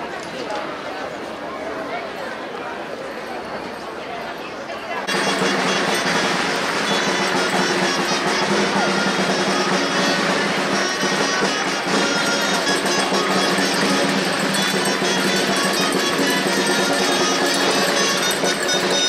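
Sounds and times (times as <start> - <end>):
folk music with held notes: 5.0 - 19.0.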